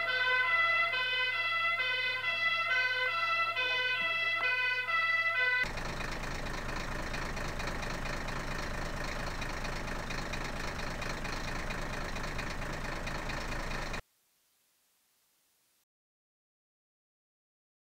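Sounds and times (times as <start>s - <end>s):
vehicle engine idling: 0.0s - 14.0s.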